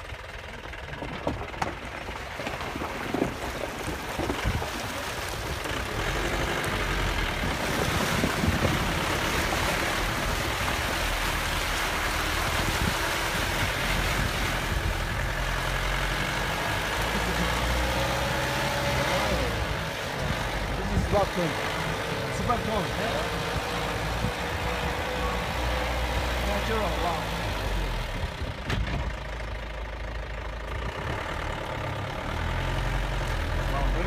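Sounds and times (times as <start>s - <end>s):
engine low drone: 0.0s - 34.0s
water splashing against vehicle: 0.0s - 34.0s.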